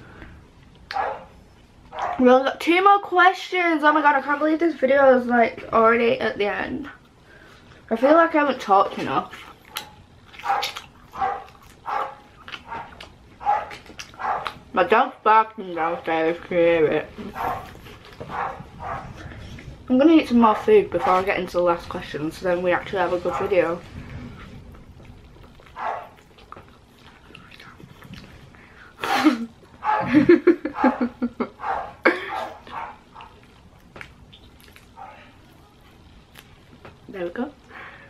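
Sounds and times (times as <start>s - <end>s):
dog barking: 0.9s - 1.3s, 1.9s - 2.2s, 9.8s - 14.6s, 18.3s - 19.1s, 25.8s - 26.1s, 29.8s - 30.1s, 30.8s - 33.4s
chicken wing being eaten: 9.4s - 14.6s.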